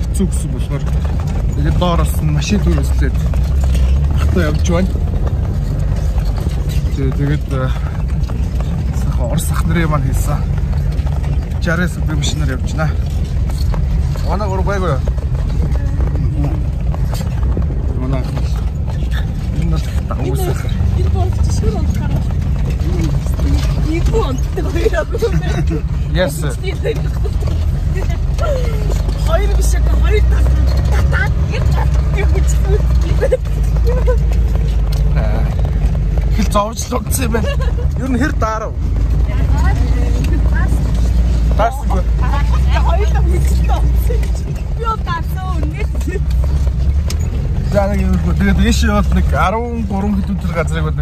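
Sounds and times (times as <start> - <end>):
passengers talking: 0.0 - 51.0
van engine rumble: 0.0 - 51.0.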